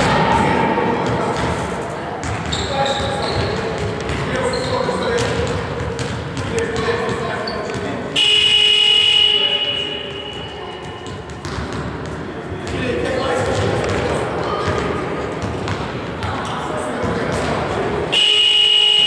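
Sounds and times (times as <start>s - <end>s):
voices chattering: 0.0s - 19.0s
basketballs bouncing on wooden floor: 0.9s - 19.0s
sports hall horn blast: 8.2s - 10.8s, 18.1s - 19.0s.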